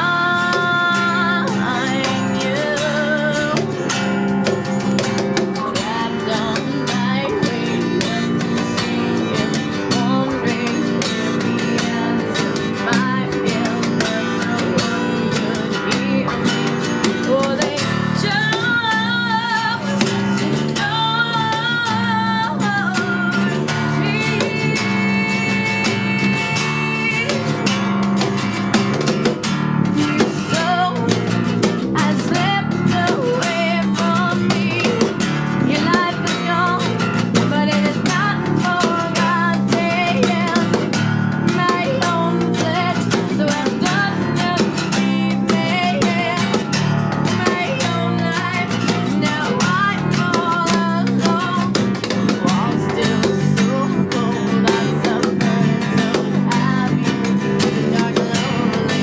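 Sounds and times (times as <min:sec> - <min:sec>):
woman singing with vibrato: 0:00.0 - 0:29.0, 0:29.7 - 0:59.0
acoustic guitar picked and strummed: 0:00.0 - 0:59.0.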